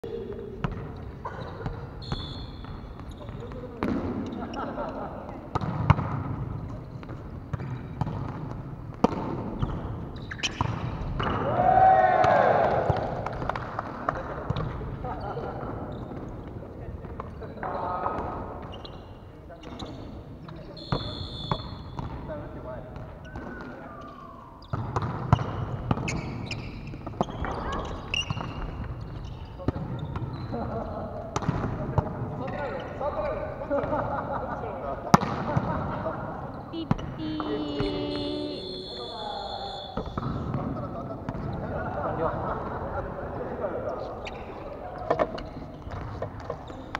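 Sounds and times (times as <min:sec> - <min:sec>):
volleyball slaps: 0:07.5 - 0:09.6, 0:10.4 - 0:14.8, 0:31.3 - 0:32.2, 0:35.1 - 0:35.8
players shouting: 0:11.4 - 0:13.1, 0:36.8 - 0:40.2.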